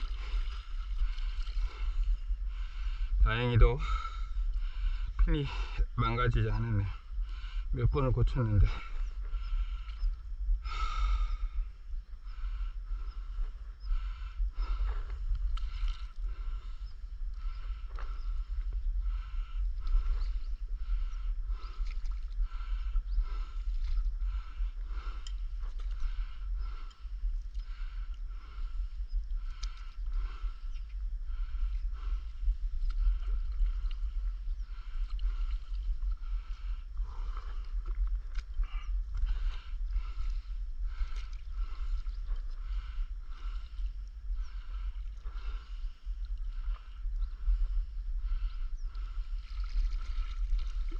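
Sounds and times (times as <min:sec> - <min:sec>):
paddle strokes in water: 0:00.0 - 0:03.0, 0:14.0 - 0:50.9
water lapping at board: 0:00.0 - 0:03.4, 0:13.9 - 0:28.8, 0:31.3 - 0:50.9
steady low rumble: 0:00.0 - 0:50.9.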